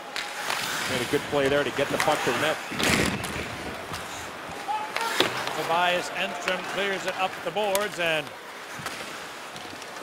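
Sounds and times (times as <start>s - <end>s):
crowd hubbub: 1.7s - 10.0s.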